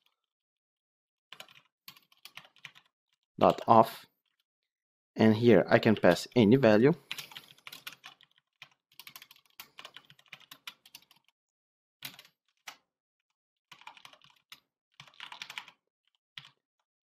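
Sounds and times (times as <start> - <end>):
typing on computer keyboard: 0.0 - 0.2, 1.3 - 2.9, 7.0 - 11.4, 12.0 - 12.9, 13.7 - 16.6.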